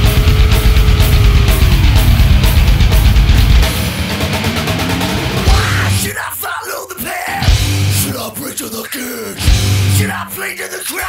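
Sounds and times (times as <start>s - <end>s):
heavy metal song: 0.0s - 11.0s
person yelling vocals: 5.5s - 11.0s.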